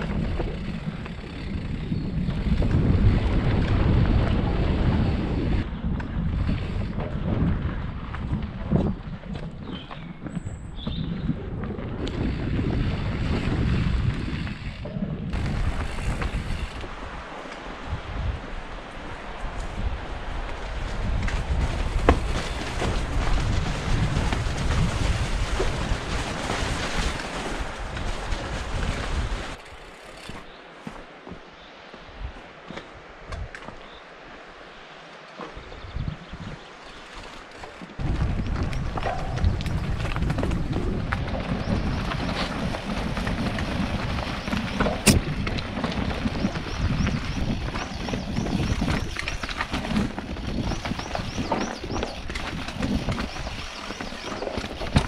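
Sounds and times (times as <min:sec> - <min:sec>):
wind buffeting microphone: 0:00.0 - 0:30.4, 0:35.5 - 0:55.0
bike knocks and rattles: 0:12.1 - 0:16.8, 0:21.1 - 0:31.4, 0:37.3 - 0:55.0
tyres rolling over stones: 0:20.5 - 0:31.4, 0:36.9 - 0:55.0.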